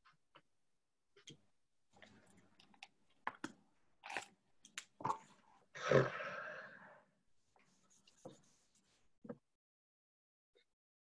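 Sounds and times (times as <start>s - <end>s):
pen scratching on paper: 7.6s - 9.0s.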